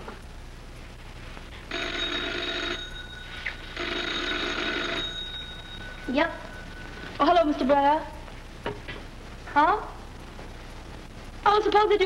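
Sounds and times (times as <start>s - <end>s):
film soundtrack hiss and hum: 0.0s - 12.0s
telephone bell ringing: 1.7s - 7.8s.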